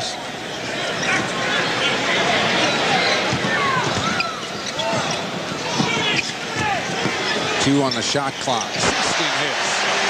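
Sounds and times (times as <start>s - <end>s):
arena crowd noise: 0.0s - 10.0s
sneakers squeaking on court: 2.6s - 8.0s.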